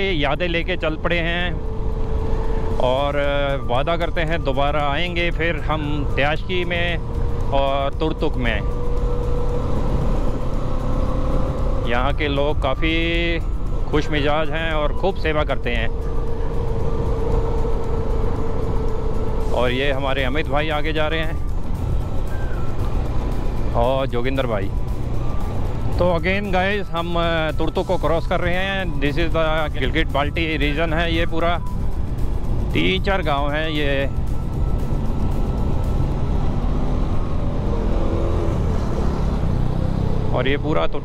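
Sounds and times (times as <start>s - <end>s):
motorcycle engine cruising: 0.0s - 41.0s
wind and road noise: 0.0s - 41.0s.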